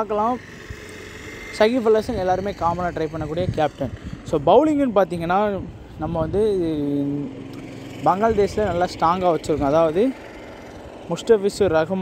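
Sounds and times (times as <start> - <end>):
man talking: 0.0 - 0.4, 1.5 - 7.4, 8.0 - 10.2, 11.1 - 12.0.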